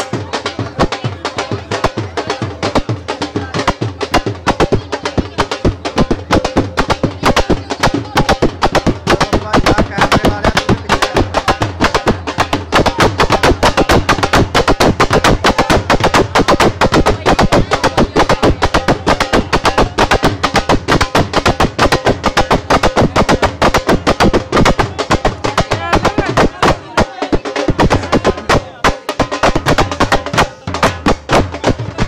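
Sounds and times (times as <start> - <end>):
loud fast drumming: 0.0 - 32.0
music: 0.0 - 32.0
voices: 0.0 - 32.0.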